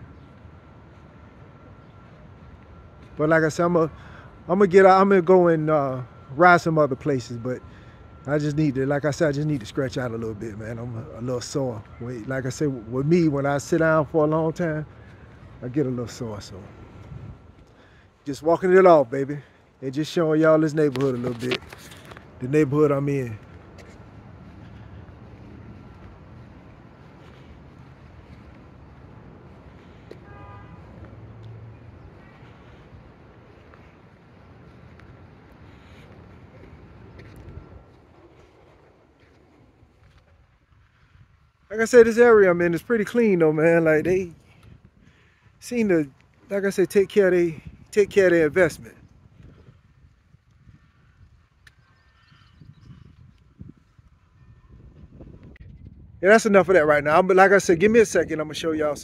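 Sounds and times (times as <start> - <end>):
faint distant traffic: 0.0 - 59.0
wind rumble on microphone: 16.3 - 17.7, 23.3 - 42.4, 44.0 - 46.5, 47.5 - 59.0
wind noise on microphone: 16.6 - 17.6, 43.9 - 45.6, 47.4 - 59.0
soft footsteps: 23.2 - 40.9.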